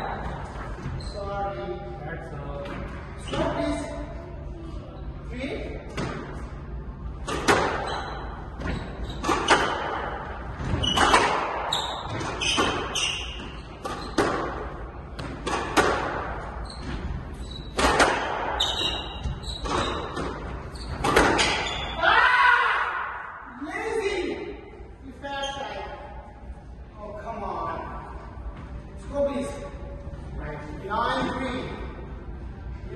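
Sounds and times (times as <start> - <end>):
squash ball smacks echoing: 7.2 - 7.9, 13.8 - 16.4, 17.7 - 18.6, 19.7 - 21.7.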